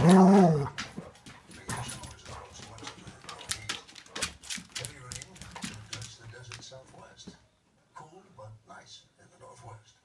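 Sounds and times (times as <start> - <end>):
dog vocal sounds: 0.0 - 1.1
dogs scuffling on wooden floor: 0.0 - 7.4.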